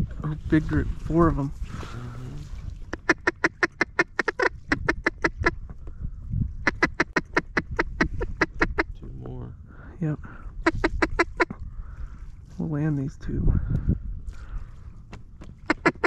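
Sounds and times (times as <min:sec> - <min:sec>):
duck call quacks: 0:02.9 - 0:05.6, 0:06.7 - 0:08.9, 0:15.7 - 0:16.0.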